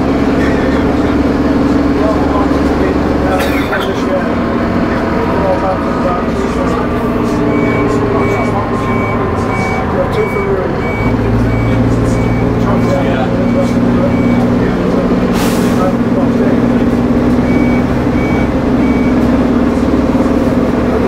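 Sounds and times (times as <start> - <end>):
bus diesel engine droning: 0.0 - 21.0
high repeating beep: 7.5 - 14.6, 17.4 - 19.2.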